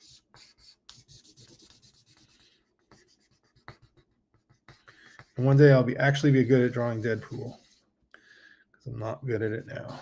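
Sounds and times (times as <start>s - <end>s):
pen scratching on paper: 0.0s - 7.8s.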